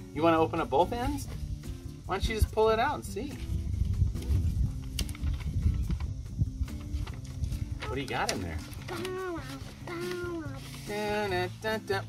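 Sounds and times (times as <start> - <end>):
paper envelope rustling: 3.4 - 11.6.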